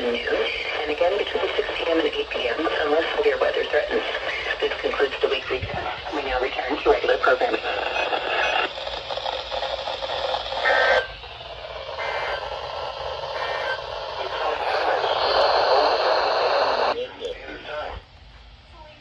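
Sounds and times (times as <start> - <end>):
radio static hiss: 0.0 - 18.0.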